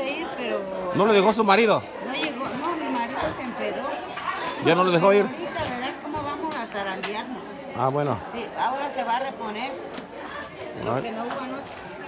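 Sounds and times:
several people talking: 0:00.0 - 0:12.0.

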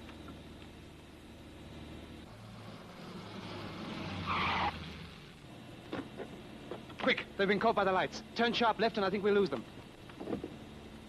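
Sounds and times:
car engine running: 0:00.0 - 0:11.0
tyre squeal: 0:03.0 - 0:05.3.

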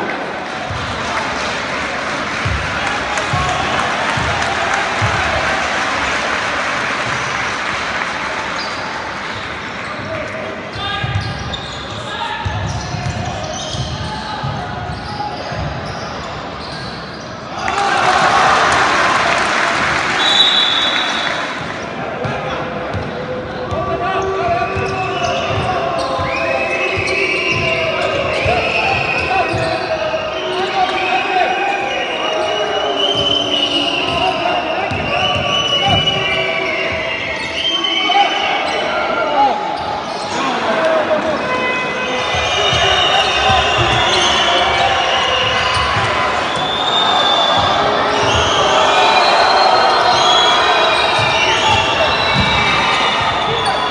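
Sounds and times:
crowd cheering and applause: 0:00.0 - 0:10.1, 0:17.5 - 0:22.0, 0:40.4 - 0:53.9.

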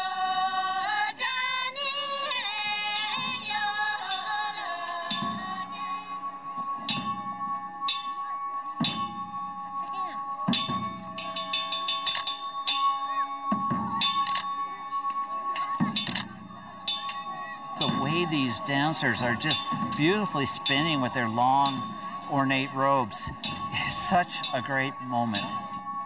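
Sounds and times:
drum beats: 0:02.6 - 0:26.0.

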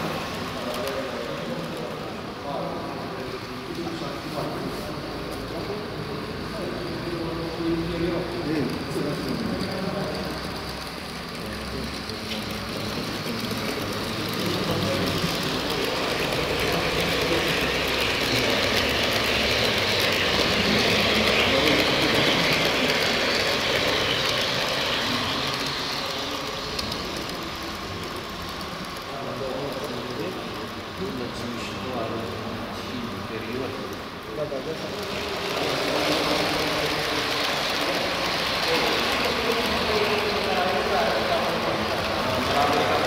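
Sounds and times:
model train rolling whir: 0:00.0 - 0:43.0.

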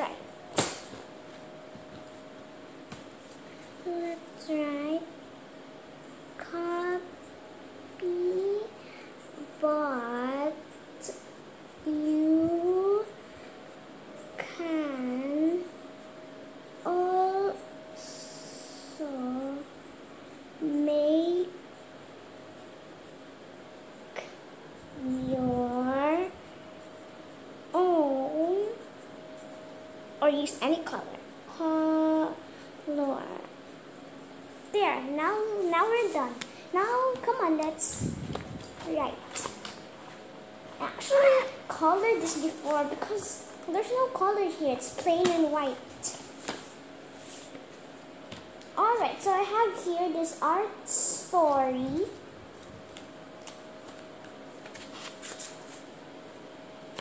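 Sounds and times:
faint steady hum: 0:00.0 - 0:57.0.

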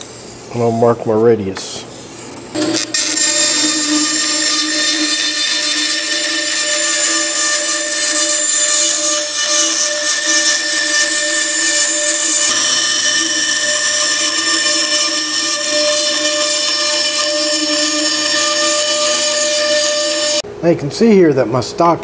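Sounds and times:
bandsaw whining: 0:02.5 - 0:20.4.

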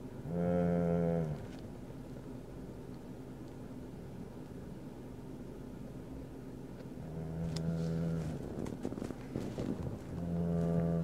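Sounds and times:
man humming on one pitch: 0:00.2 - 0:01.4, 0:07.0 - 0:08.4, 0:10.1 - 0:11.0.

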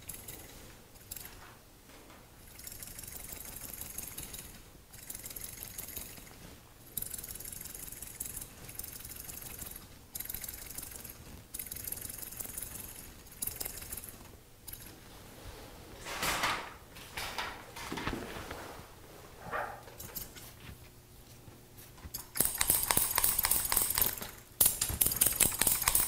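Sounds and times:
scissors snipping hair: 0:20.0 - 0:20.5, 0:22.0 - 0:26.0.

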